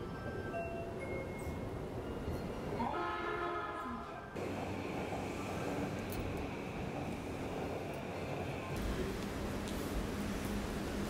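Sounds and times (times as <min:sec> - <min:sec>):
train rumbling: 0:04.4 - 0:11.0.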